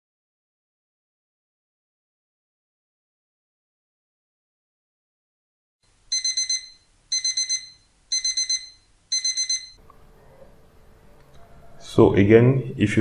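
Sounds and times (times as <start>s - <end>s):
alarm clock beeping: 6.1s - 9.8s.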